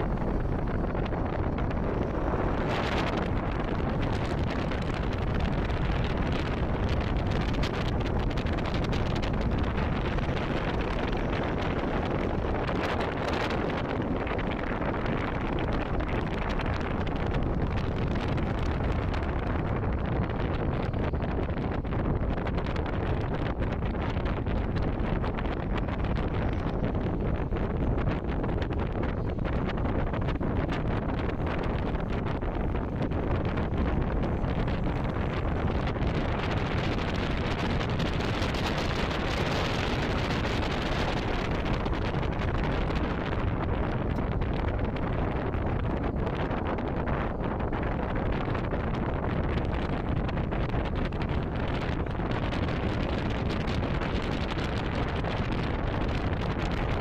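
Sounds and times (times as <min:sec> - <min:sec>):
wind rushing over microphone: 0:00.0 - 0:57.0.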